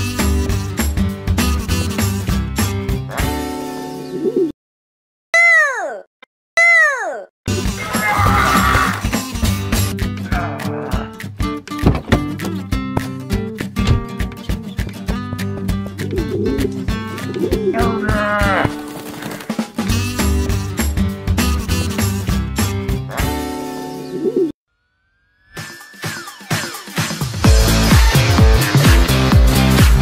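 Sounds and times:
cartoon music with plucked rhythm: 0:00.0 - 0:04.5, 0:07.5 - 0:18.6, 0:19.8 - 0:24.5
cartoon character vocal grumble: 0:05.4 - 0:09.0, 0:10.3 - 0:11.2.

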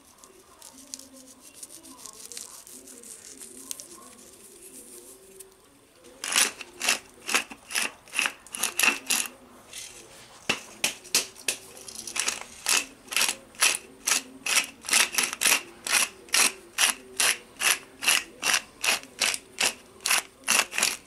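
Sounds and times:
pepper mill grinding crunches: 0:06.2 - 0:09.3, 0:11.8 - 0:21.0.

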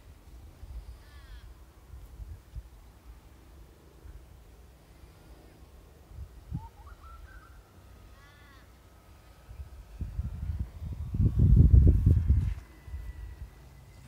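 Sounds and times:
crow-like caw: 0:01.0 - 0:01.6, 0:08.1 - 0:08.8
bird calling: 0:06.5 - 0:08.8
low rumble on microphone: 0:09.4 - 0:14.0.

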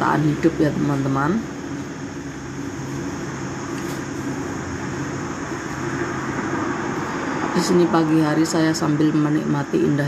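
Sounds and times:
steady low hum: 0:00.0 - 0:10.0
cars passing on road: 0:02.0 - 0:10.0.

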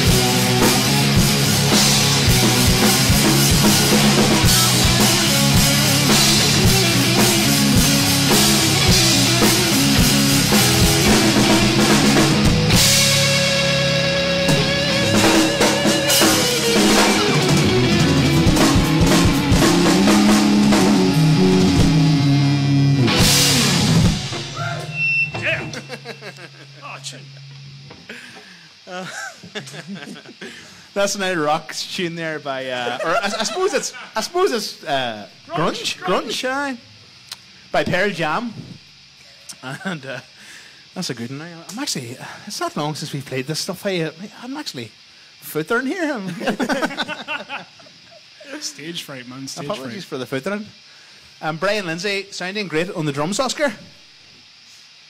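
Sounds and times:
live rock band playing: 0:00.0 - 0:25.8.

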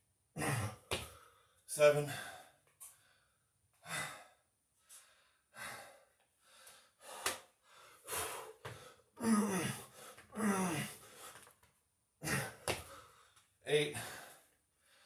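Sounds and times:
man breathing hard: 0:00.4 - 0:11.5, 0:12.2 - 0:15.0.

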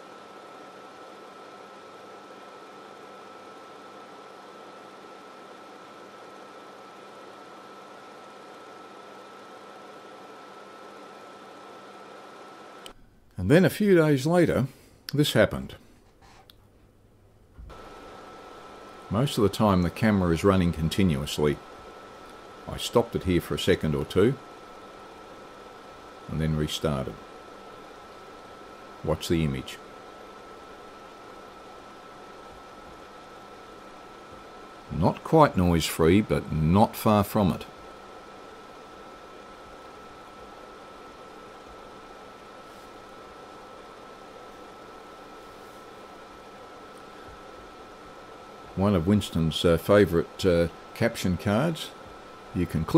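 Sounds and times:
faint hiss with high whine: 0:00.0 - 0:16.5, 0:17.4 - 0:52.9.

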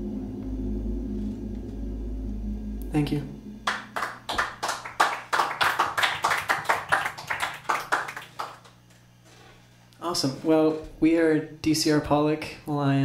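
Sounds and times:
group clapping: 0:03.6 - 0:08.8.

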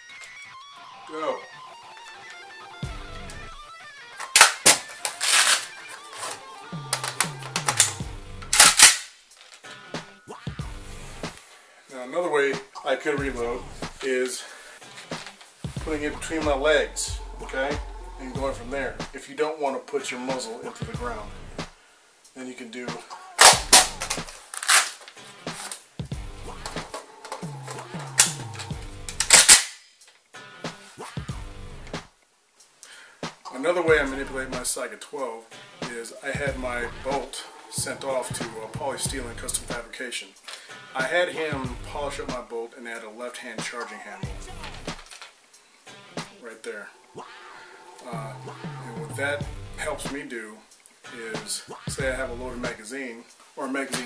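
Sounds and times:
guitar music: 0:00.0 - 0:08.9, 0:09.6 - 0:11.5, 0:12.6 - 0:14.1, 0:14.7 - 0:19.2, 0:20.4 - 0:21.7, 0:23.0 - 0:24.5, 0:25.1 - 0:29.4, 0:30.4 - 0:32.0, 0:33.9 - 0:34.8, 0:35.5 - 0:39.9, 0:44.1 - 0:45.0, 0:45.7 - 0:50.2
magazine clacks: 0:04.2 - 0:09.7, 0:23.4 - 0:25.9, 0:26.7 - 0:30.2, 0:44.9 - 0:45.4.

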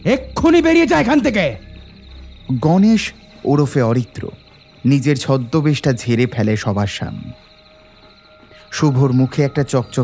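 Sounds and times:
crickets chirring: 0:00.0 - 0:10.0.

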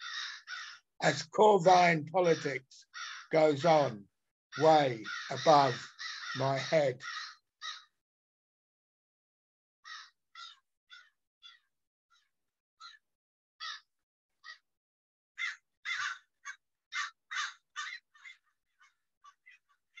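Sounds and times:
crows cawing: 0:00.0 - 0:00.9, 0:02.2 - 0:03.9, 0:04.6 - 0:08.0, 0:09.8 - 0:11.6, 0:13.6 - 0:14.6, 0:15.4 - 0:20.0.

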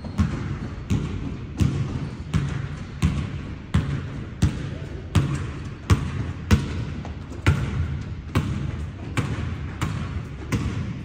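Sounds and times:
basketball bouncing on wooden floor: 0:00.0 - 0:11.0.

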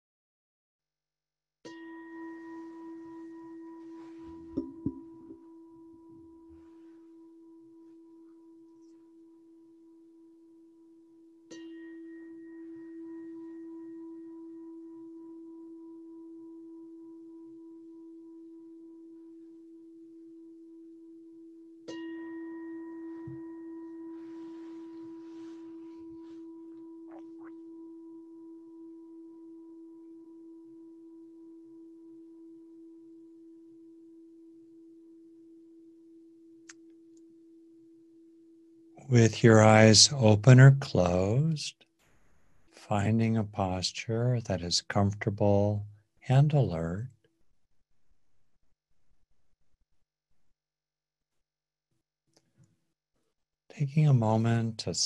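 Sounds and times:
meditation bell ringing: 0:01.7 - 0:36.6.

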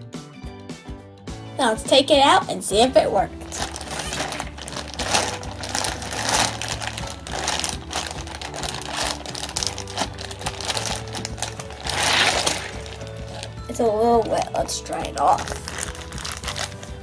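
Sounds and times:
background music: 0:00.0 - 0:17.0
plastic bag crinkling: 0:03.4 - 0:17.0.

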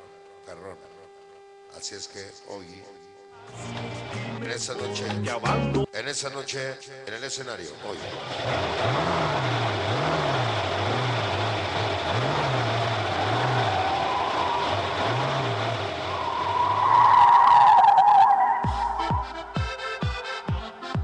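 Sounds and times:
low pulsing: 0:08.8 - 0:20.2.

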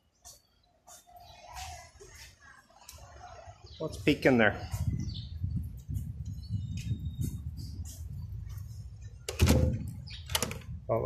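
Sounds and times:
door handle clicks and knocks: 0:09.3 - 0:10.7
door handle rumbling: 0:09.3 - 0:10.8.

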